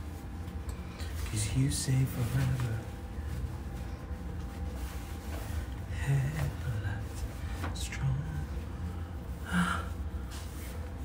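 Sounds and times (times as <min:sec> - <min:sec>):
steady low hum: 0:00.0 - 0:11.0
man gasping: 0:09.0 - 0:10.0.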